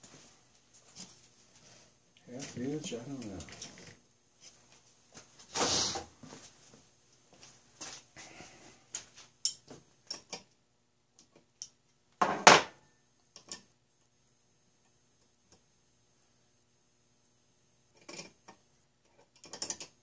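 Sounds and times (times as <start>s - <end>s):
metal tools clicking on wood: 9.4s - 10.6s, 13.3s - 13.7s, 18.0s - 20.0s.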